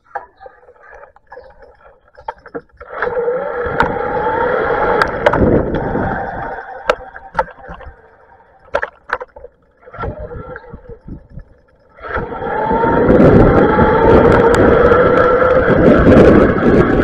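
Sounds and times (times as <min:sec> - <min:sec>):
rising electric motor whine: 0:00.9 - 0:17.0
wind rumble on microphone: 0:01.3 - 0:08.2, 0:09.9 - 0:17.0.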